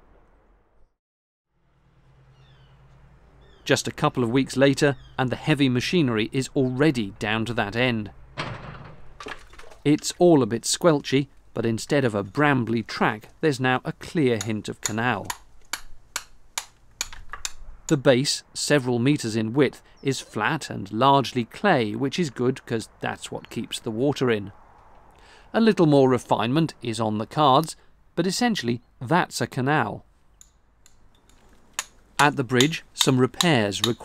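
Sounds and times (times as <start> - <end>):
hammer striking steel chisel: 14.4 - 17.6, 30.4 - 34.0
sharp irregular clicks: 30.4 - 34.0.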